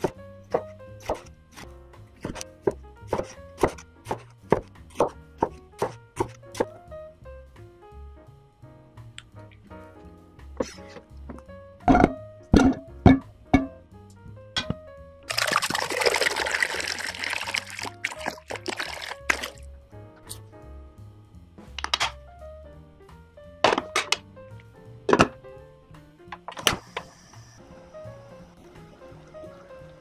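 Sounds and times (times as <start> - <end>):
background music: 0.0 - 30.0
potatoes knocking in metal pot: 11.3 - 13.8, 25.1 - 25.4
water pouring into pot: 15.3 - 19.6, 28.4 - 30.0.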